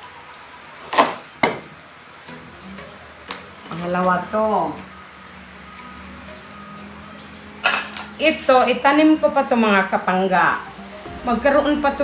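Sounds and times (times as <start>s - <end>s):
gloved hands rustling plant cutting: 3.2s - 4.9s.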